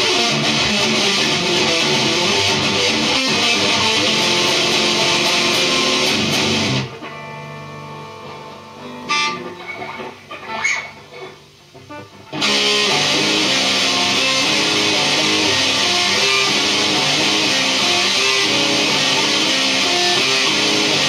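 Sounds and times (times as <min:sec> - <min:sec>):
distorted electric guitar: 0:00.0 - 0:21.0.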